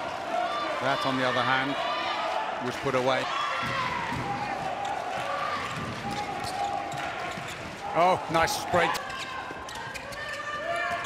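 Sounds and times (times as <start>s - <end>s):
ball bouncing on indoor court: 3.5s - 7.8s.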